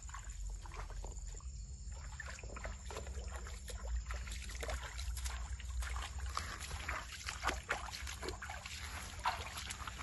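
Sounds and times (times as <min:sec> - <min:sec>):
feet splashing through stream: 0:00.0 - 0:10.0.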